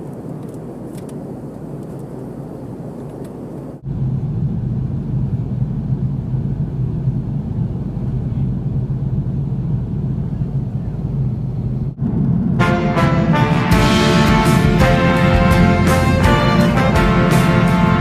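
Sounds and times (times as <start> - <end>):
airliner cabin drone: 0.0 - 18.0
music: 12.6 - 18.0.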